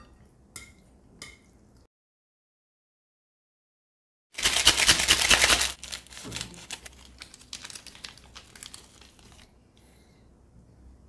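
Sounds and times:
packet crinkling: 4.4s - 9.5s
seasoning sachet rattling: 4.4s - 9.5s.

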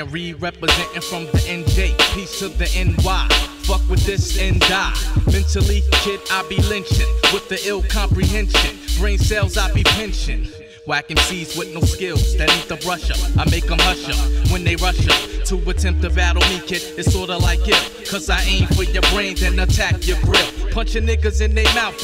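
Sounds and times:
heavy bassline: 0.0s - 22.0s
rapping over a beat: 0.0s - 22.0s.

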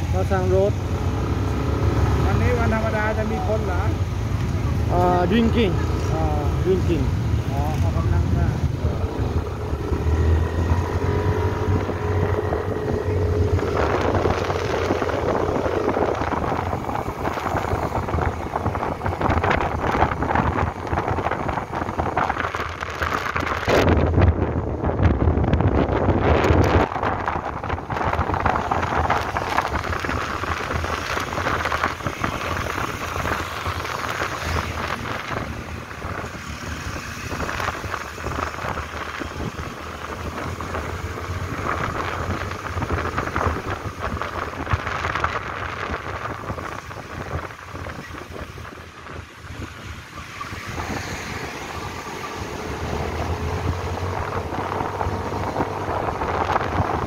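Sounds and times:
passing cars: 0.0s - 57.0s
wind rumbling on microphone: 0.0s - 57.0s
scooter engine: 7.4s - 22.8s.

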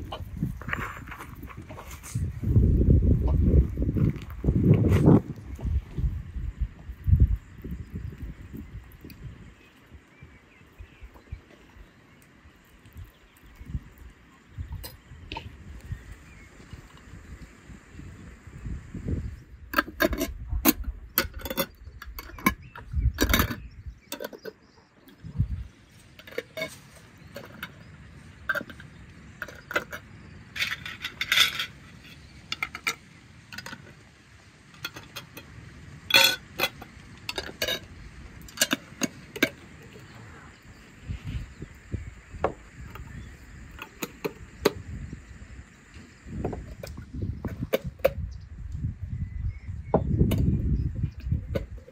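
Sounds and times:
screw lids scraping turns: 19.7s - 24.6s, 26.0s - 33.9s, 34.8s - 35.5s, 36.1s - 39.6s
metal lids clinking on glass jars: 19.8s - 24.6s, 26.2s - 33.9s, 36.1s - 37.9s, 38.5s - 39.6s.

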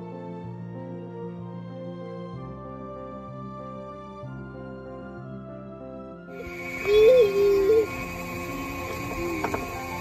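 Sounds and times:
soft background music: 0.0s - 10.0s
short high voice with bending pitch: 6.6s - 9.6s.

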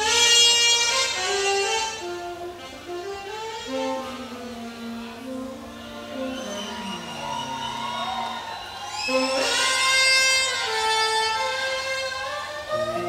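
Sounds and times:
jazz saxophone playing: 0.0s - 13.0s.

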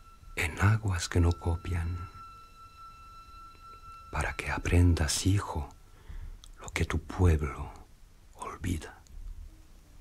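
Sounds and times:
faint steady high tone: 0.0s - 10.0s
record hiss: 0.0s - 10.0s.

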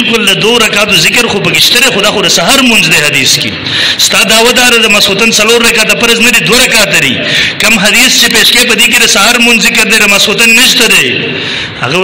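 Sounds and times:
man speaking into a microphone: 0.0s - 12.0s.

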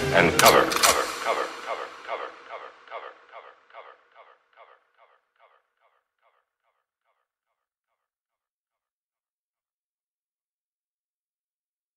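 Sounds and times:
echoing radio-like voice sample: 0.0s - 6.4s.

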